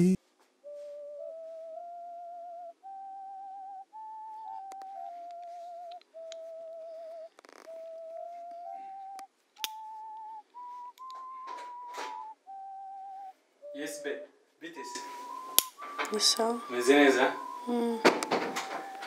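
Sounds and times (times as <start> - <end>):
slow whistle-like tune: 0.5 - 19.0.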